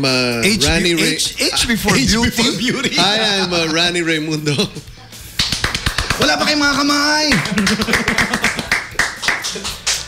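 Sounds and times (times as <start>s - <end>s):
men laughing: 1.5s - 4.9s, 7.4s - 8.8s
hand claps: 5.3s - 10.0s.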